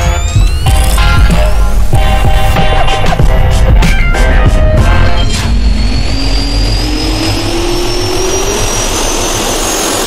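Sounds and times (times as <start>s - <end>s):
jet engine rising whines: 0.0s - 10.0s.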